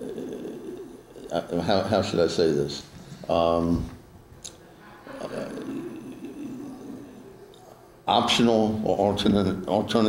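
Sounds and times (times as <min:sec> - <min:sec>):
man saying uh: 0:01.3 - 0:03.9.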